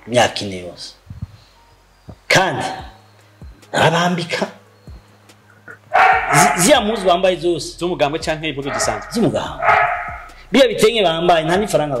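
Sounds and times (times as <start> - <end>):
man speaking animatedly: 6.3 - 9.8, 10.4 - 12.0.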